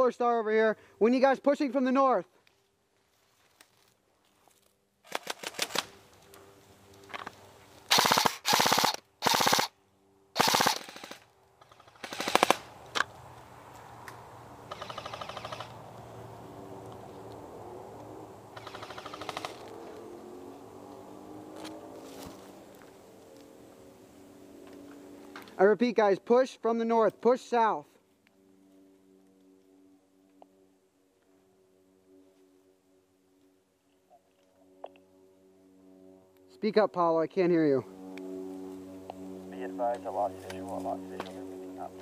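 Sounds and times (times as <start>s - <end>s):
airsoft guns firing bursts: 5.1s - 5.9s, 7.9s - 9.7s, 10.4s - 12.7s, 18.6s - 19.6s.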